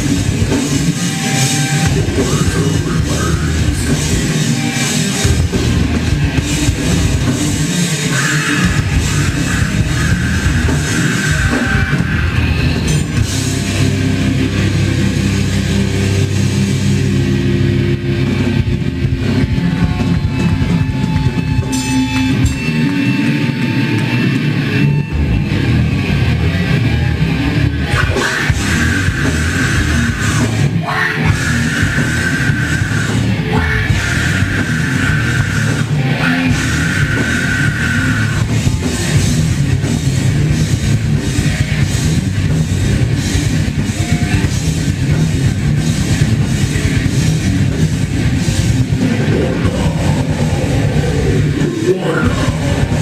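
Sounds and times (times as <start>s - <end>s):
bass guitar: 0.0s - 53.0s
distorted electric guitars: 0.0s - 53.0s
drums: 0.0s - 53.0s.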